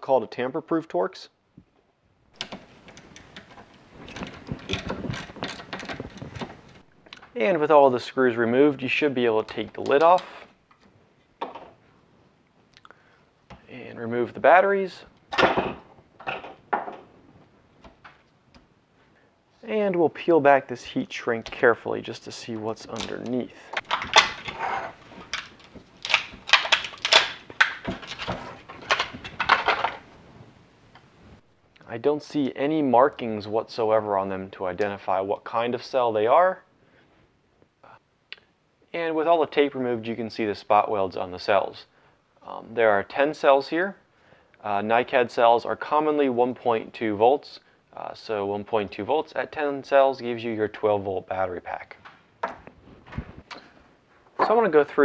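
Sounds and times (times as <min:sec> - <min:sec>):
plastic wrap crinkling: 0:22.8 - 0:30.4.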